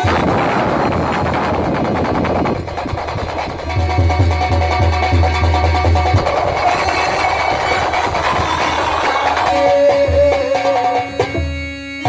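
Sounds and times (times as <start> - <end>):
folk instruments playing rhythmically: 0.0 - 12.0
hand drum: 0.0 - 12.0.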